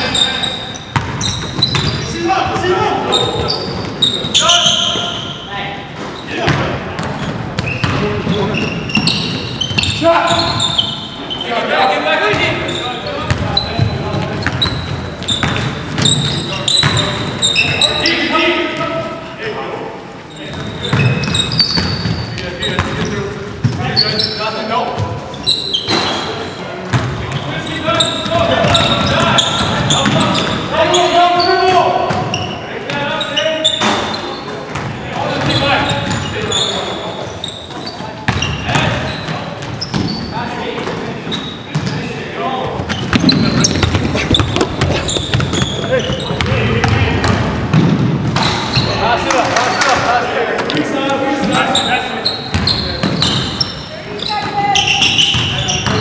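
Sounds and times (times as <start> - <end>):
shoe squeaks: 0.0 - 18.4, 20.3 - 26.6, 27.2 - 40.6, 41.2 - 42.1, 42.8 - 46.7, 48.4 - 50.0, 51.4 - 56.0
basketball bouncing on wooden floor: 0.9 - 2.0, 13.3 - 17.1, 42.8 - 48.5.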